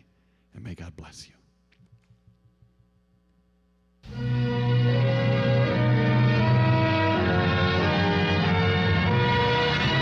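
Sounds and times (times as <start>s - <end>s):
faint electrical hum: 0.0s - 5.0s.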